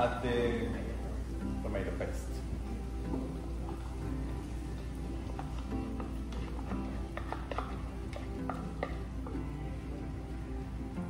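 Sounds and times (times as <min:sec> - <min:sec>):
background music: 0:00.0 - 0:11.0
tub tapping and scraping on pot: 0:05.3 - 0:09.4.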